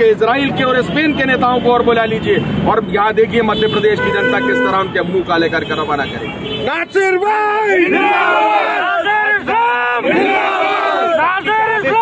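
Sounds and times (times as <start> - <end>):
men shouting slogans: 6.9 - 12.0.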